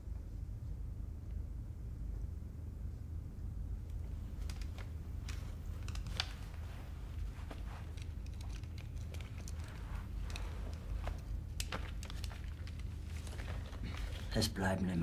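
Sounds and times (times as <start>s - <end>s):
low room hum: 0.0s - 15.0s
small clicks of glasses handling: 3.9s - 14.2s
faint rustles: 4.0s - 14.6s.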